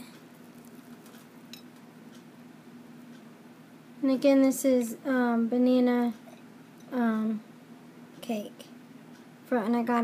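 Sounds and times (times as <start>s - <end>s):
fork clinking on ceramic plate: 1.5s - 1.7s.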